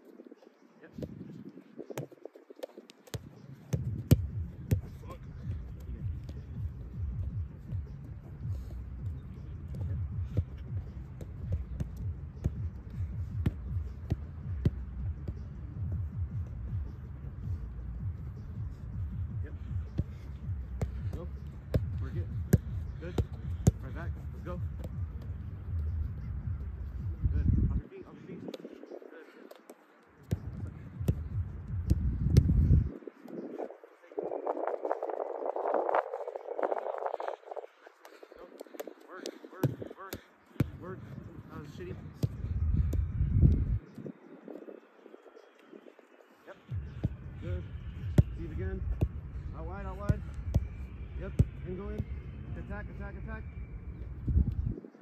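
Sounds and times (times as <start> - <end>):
wind rumble on microphone: 3.3 - 29.1, 30.4 - 37.9, 40.8 - 46.0, 46.7 - 55.0.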